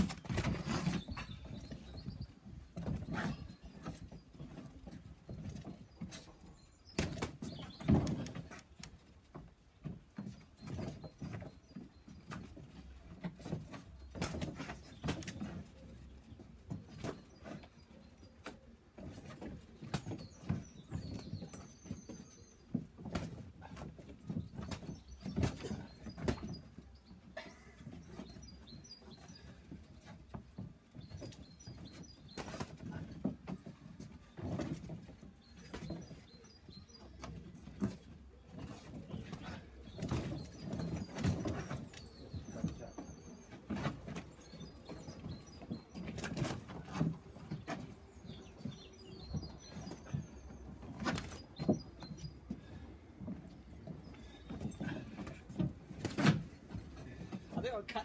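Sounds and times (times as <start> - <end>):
footsteps on wooden decking: 0.0 - 58.0.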